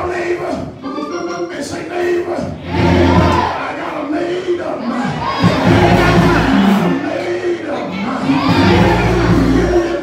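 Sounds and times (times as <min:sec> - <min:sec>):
congregation calling out: 0:00.0 - 0:10.0.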